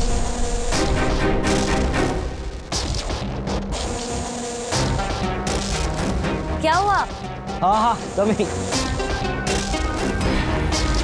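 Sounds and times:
background music with sustained tones: 0.0s - 11.0s.

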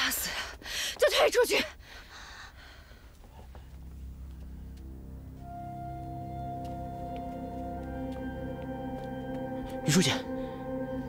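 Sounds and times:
woman speaking tensely: 1.0s - 1.8s.

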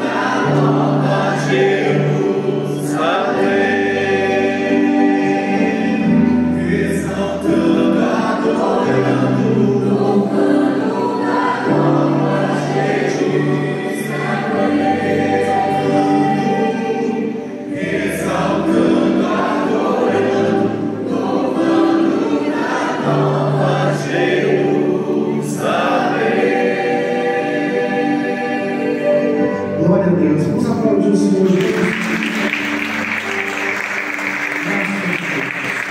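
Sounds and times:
choir singing a gospel hymn: 0.0s - 35.9s.

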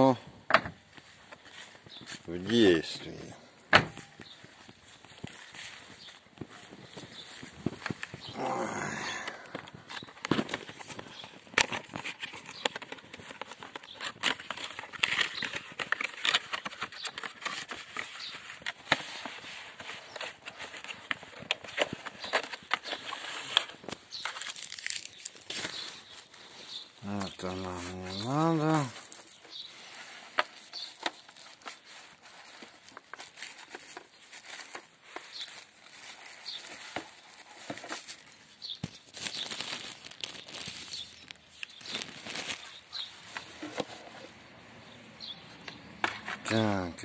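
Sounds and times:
cardboard box being opened: 9.4s - 26.8s.

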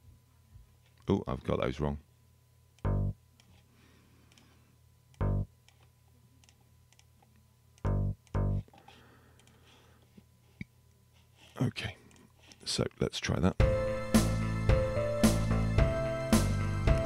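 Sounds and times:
short bass synth notes: 2.8s - 3.2s, 5.2s - 5.5s, 7.9s - 8.6s.

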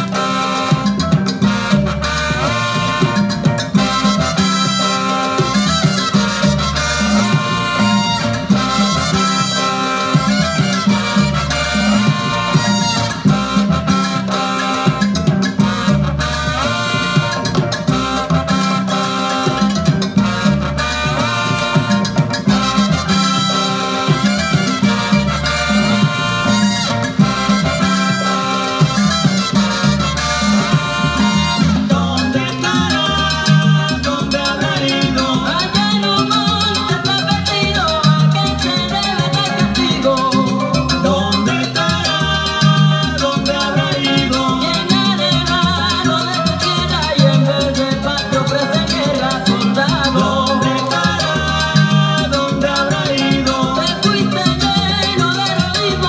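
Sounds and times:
salsa band playing: 0.0s - 56.0s.

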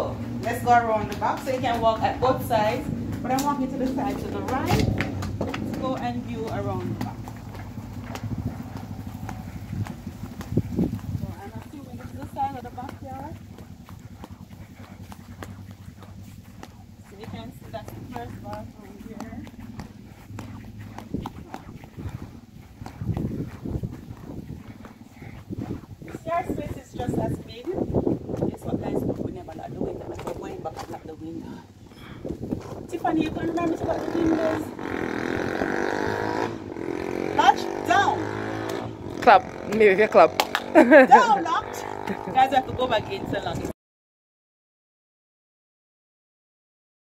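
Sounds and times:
footsteps on grass and gravel: 0.2s - 36.1s.

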